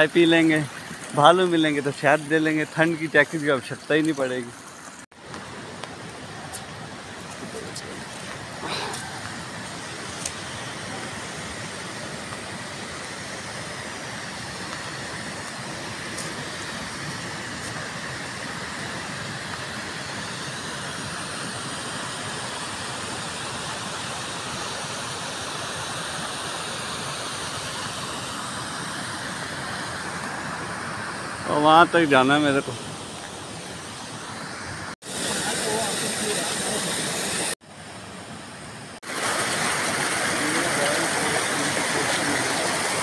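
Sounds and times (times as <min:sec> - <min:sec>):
stream rushing over stones: 0:00.0 - 0:43.0.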